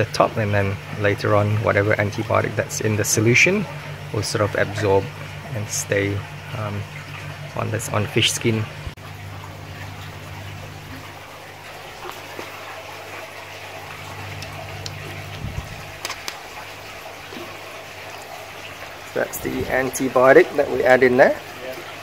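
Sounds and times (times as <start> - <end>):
steady low hum: 0.0 - 21.5
water sloshing in a tub: 0.0 - 22.0.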